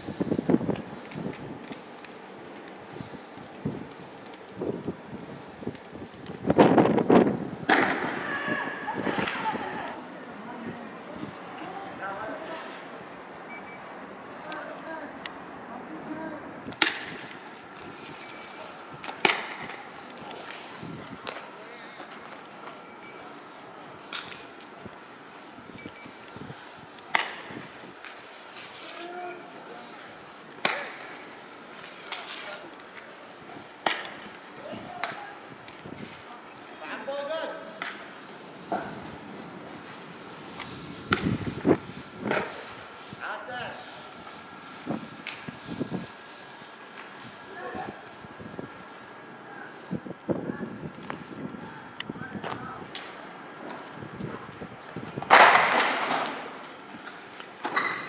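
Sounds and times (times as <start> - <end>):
people shouting: 8.0 - 10.1.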